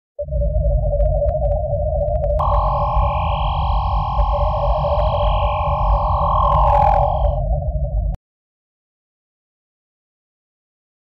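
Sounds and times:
low rumbling drone: 0:00.2 - 0:08.2
steady hum: 0:00.2 - 0:08.2
bright sustained electronic chord: 0:02.4 - 0:07.4.

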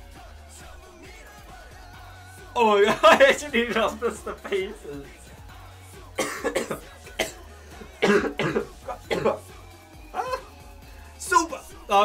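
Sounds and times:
faint pop music: 0:00.0 - 0:12.0
man coughing: 0:02.7 - 0:05.0, 0:06.2 - 0:10.5.

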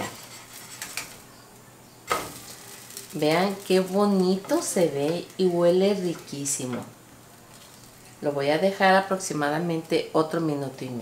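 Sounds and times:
faint sizzle: 0:00.0 - 0:11.0
bread slapping into frying pan: 0:02.1 - 0:05.3.

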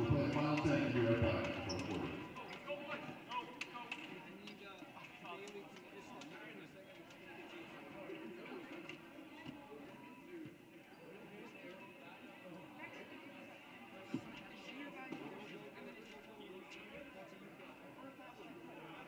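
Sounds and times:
chatter of many voices: 0:00.0 - 0:19.0.

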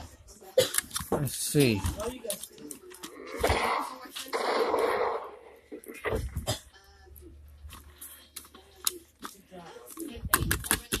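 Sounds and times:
faint unclear voice: 0:00.0 - 0:11.0.

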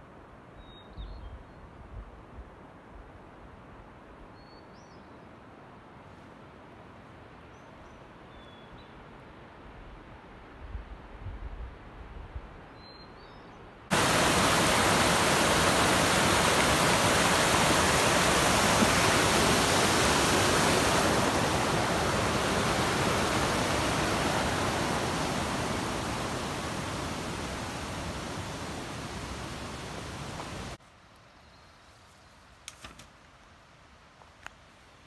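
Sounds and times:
bird chirp: 0:12.7 - 0:13.6
creek water roaring: 0:13.9 - 0:30.8.

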